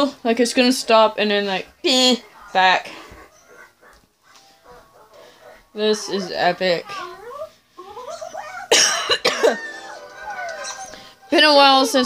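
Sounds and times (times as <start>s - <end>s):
woman coughing: 8.7s - 9.7s.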